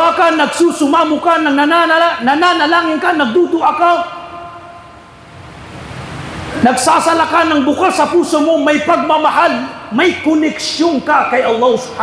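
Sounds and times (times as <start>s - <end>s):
man speaking with room echo: 0.0s - 5.1s, 6.4s - 12.0s
low rumble of room noise: 0.0s - 12.0s.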